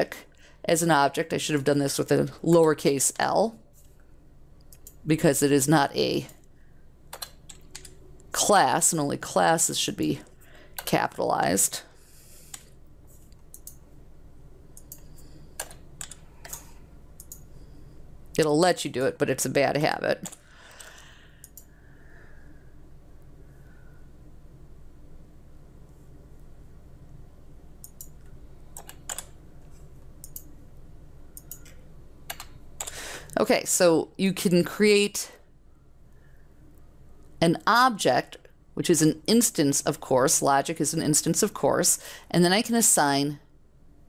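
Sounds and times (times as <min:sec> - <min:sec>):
faint low hum: 0:00.0 - 0:44.0
computer keyboard clicks: 0:07.1 - 0:08.0, 0:13.5 - 0:13.8, 0:14.8 - 0:17.4, 0:28.8 - 0:29.3, 0:31.4 - 0:33.0.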